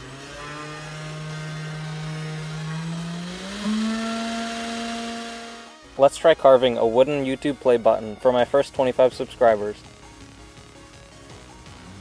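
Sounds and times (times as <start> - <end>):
spindle motor whine: 0.0 - 6.0.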